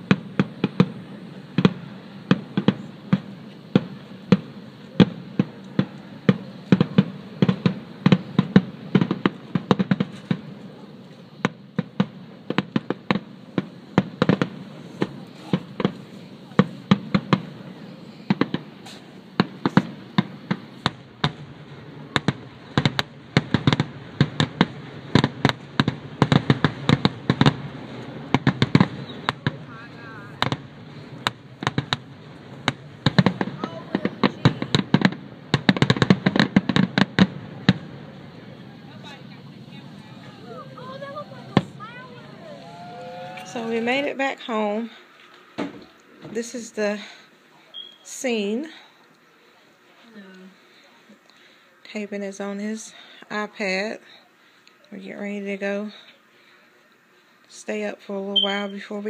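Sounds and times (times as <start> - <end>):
fireworks bursting bangs: 0.0 - 47.1
continuous low rumble: 0.0 - 59.0.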